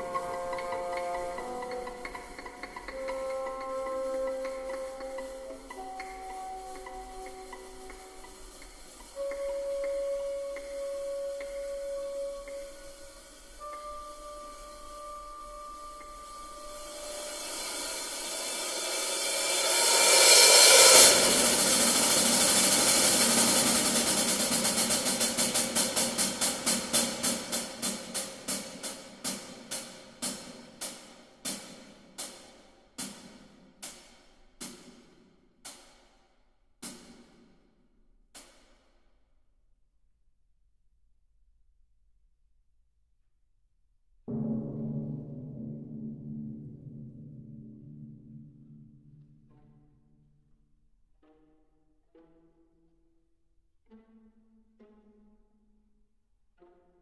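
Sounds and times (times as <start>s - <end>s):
orchestral music: 0.0s - 30.4s
rapid percussive strokes: 0.0s - 37.6s, 44.3s - 49.6s.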